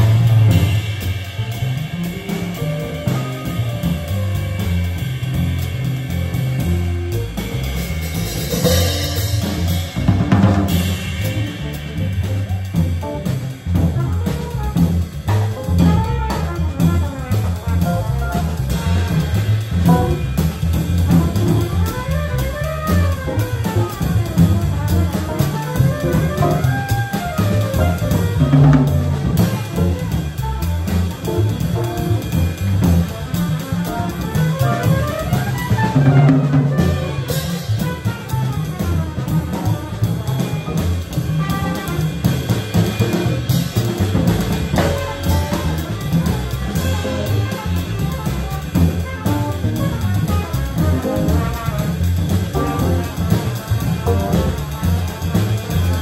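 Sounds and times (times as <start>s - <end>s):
drum kit: 0.0s - 56.0s
trumpet: 0.0s - 56.0s
upright bass: 0.0s - 56.0s.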